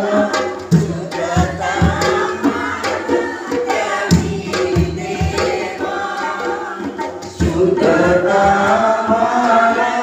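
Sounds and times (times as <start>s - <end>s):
voices chanting a hymn: 0.0s - 10.0s.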